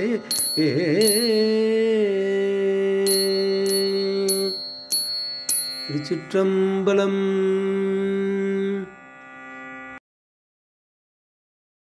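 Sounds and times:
person singing devotional hymn: 0.0 - 9.0
bright metallic strikes: 0.1 - 2.1, 3.0 - 6.4.

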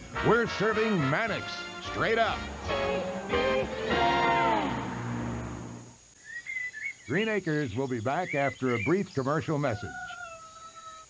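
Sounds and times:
faint high bird chirps: 6.2 - 11.0.

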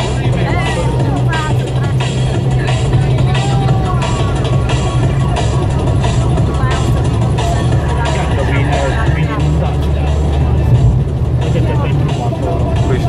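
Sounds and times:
car engine drone: 0.0 - 13.0
music with singing voice: 0.0 - 13.0
tyres on a wet road: 0.0 - 13.0.

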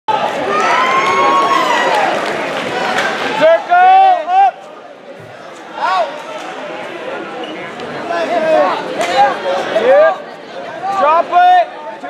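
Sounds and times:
spectators shouting and cheering: 0.1 - 7.2.

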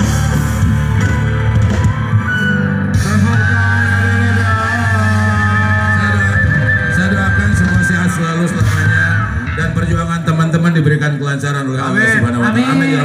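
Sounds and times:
live band music: 0.0 - 13.0.

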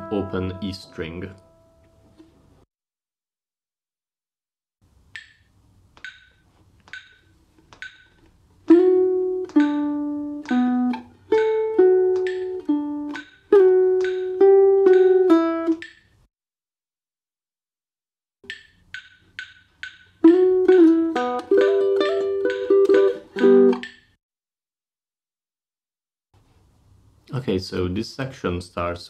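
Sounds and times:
metronome clicking: 5.1 - 16.1, 18.4 - 24.1
plucked guitar notes and chords: 8.7 - 15.9, 20.2 - 23.9.

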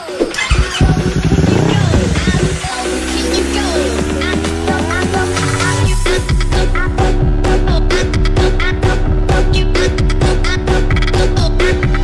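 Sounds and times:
electronic music: 0.0 - 12.0
motorcycle engine revving: 0.2 - 12.0.

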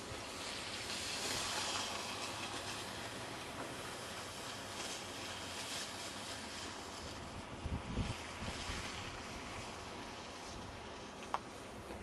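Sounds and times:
wind on microphone: 7.0 - 11.0.

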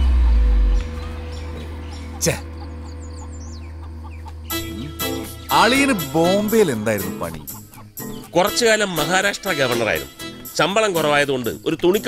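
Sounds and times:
faint high bird chirps: 0.0 - 6.4
film score low drone: 0.0 - 7.2.

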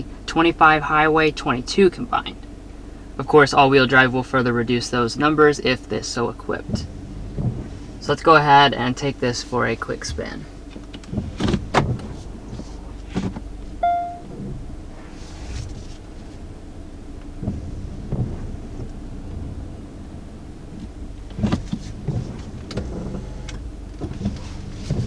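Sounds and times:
car engine hum: 0.0 - 25.0
short electronic chime: 13.8 - 14.3
clicks from car controls: 20.8 - 25.0.

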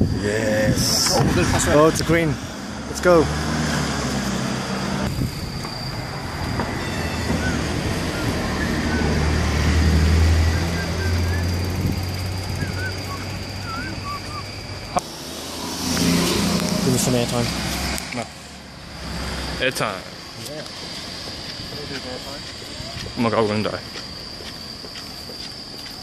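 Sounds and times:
passing vehicle rumble: 0.0 - 24.9
faint high chirps: 5.4 - 9.7, 10.3 - 15.0.

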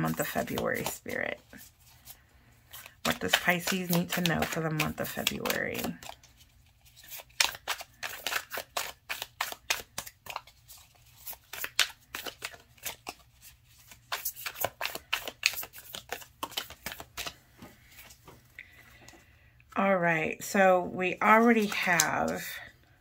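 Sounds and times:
cards being shuffled: 0.0 - 18.4, 21.3 - 22.5.

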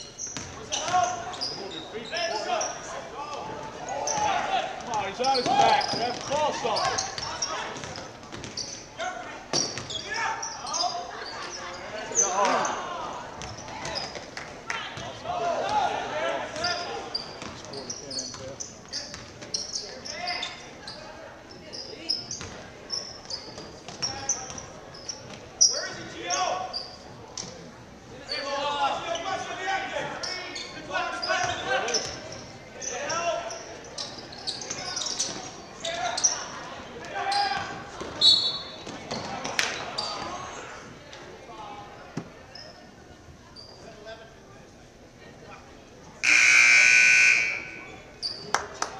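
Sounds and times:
sneaker squeaks: 0.0 - 2.9, 3.6 - 4.5, 5.1 - 12.8, 13.4 - 14.3, 16.6 - 29.4, 30.2 - 36.5, 37.3 - 40.5, 42.5 - 44.0, 47.2 - 48.6.

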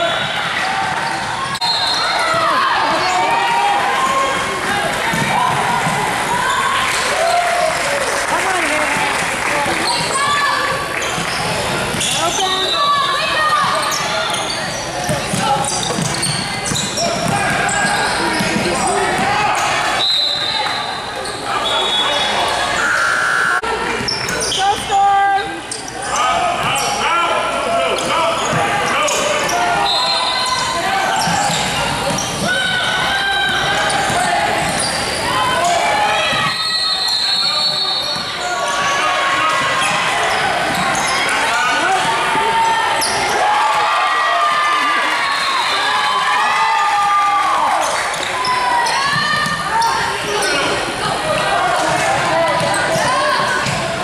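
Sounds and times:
players and spectators talking: 0.0 - 54.0.

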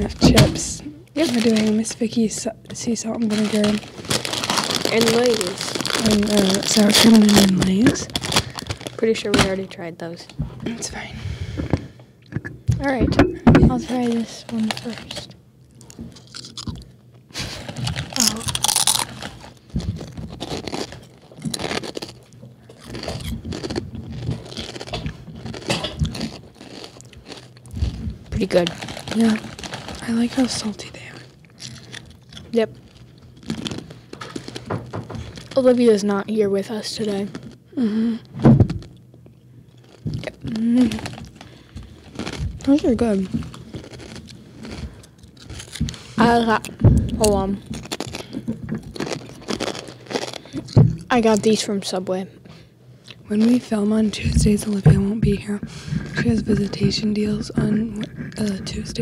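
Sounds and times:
potato chip crunching: 1.2 - 2.3, 3.2 - 9.6, 13.8 - 36.0, 39.7 - 51.6.

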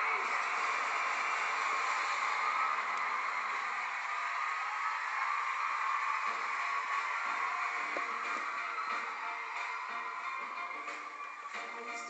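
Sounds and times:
studio audience cheering: 0.0 - 12.0.

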